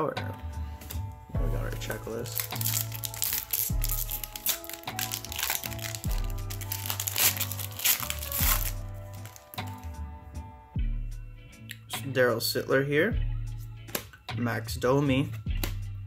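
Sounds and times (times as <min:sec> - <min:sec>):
background music with beat: 0:00.0 - 0:16.0
wrapper crinkling and tearing: 0:02.2 - 0:09.8.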